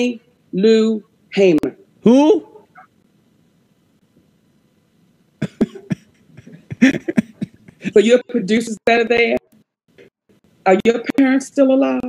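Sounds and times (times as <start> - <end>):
person laughing: 5.4 - 8.2.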